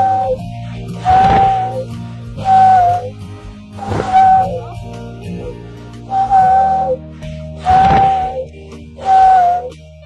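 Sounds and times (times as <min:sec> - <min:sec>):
walrus whistling: 0:00.0 - 0:09.8
background music: 0:00.0 - 0:10.0
rush of breath: 0:07.0 - 0:08.3.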